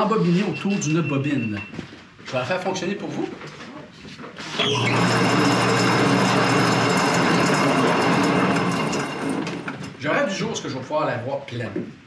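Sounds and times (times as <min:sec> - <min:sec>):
yarn machine running: 0:04.5 - 0:09.9.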